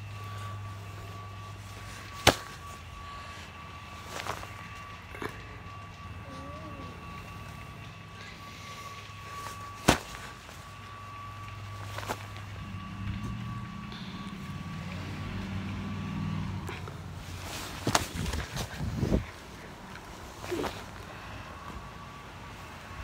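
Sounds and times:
low vehicle engine hum: 0.0 - 23.0
gloved hand slapping football: 2.2 - 2.6.

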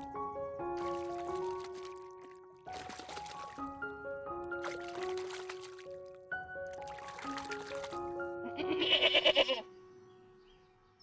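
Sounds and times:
background music with held notes: 0.0 - 11.0
goat bleating: 8.4 - 9.6.

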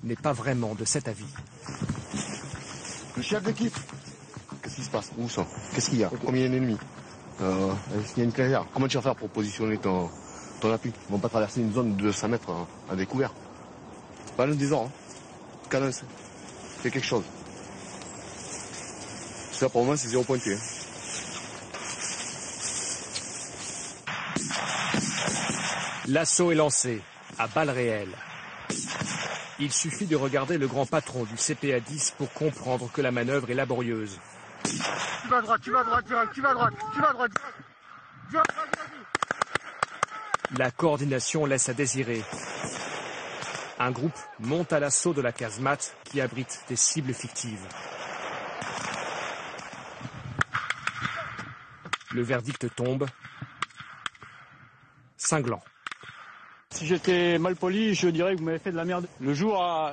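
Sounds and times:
wind noise on microphone: 0.0 - 6.3, 48.9 - 51.9
outdoor noise hiss: 0.0 - 59.9
sharp crack: 18.0 - 35.7, 36.8 - 37.6, 38.3 - 54.7, 55.3 - 57.4.

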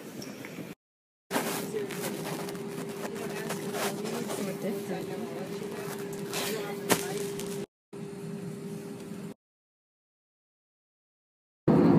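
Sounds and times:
airplane cabin drone: 0.0 - 9.4, 11.7 - 11.9
terminal crowd hubbub: 1.3 - 7.6.

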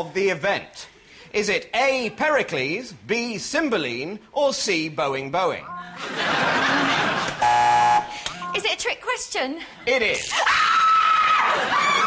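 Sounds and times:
quiz show buzzer: 7.4 - 8.2.

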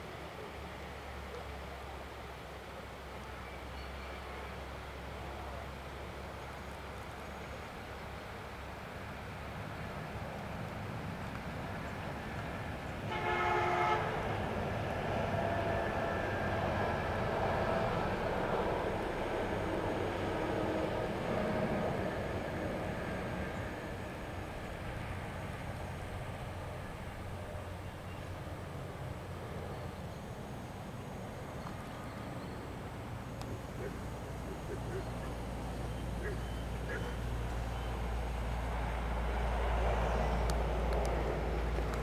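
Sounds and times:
passing vehicle rumble: 10.5 - 42.0
vehicle horn: 13.1 - 14.2.

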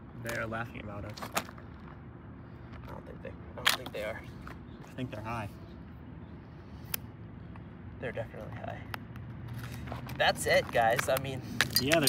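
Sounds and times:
metal pry tool levering at glass: 11.6 - 12.0.

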